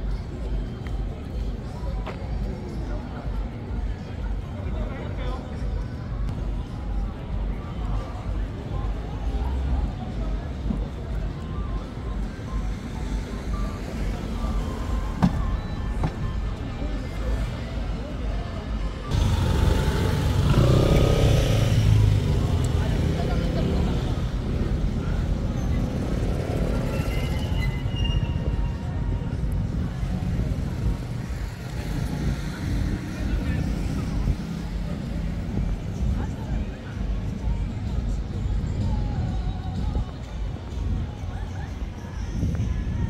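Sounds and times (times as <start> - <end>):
music from a shopfront: 0.0 - 43.0
passers-by talking: 0.0 - 43.0
steady low street rumble: 0.0 - 43.0.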